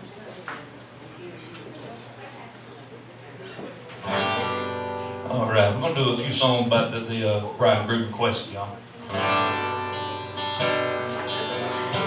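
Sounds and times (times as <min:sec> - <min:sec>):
acoustic guitar chord ringing: 0:04.0 - 0:05.8, 0:09.1 - 0:12.0.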